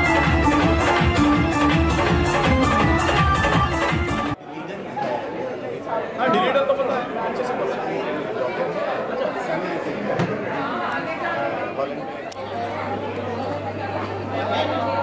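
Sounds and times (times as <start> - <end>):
chatter of many guests: 0.0 - 15.0.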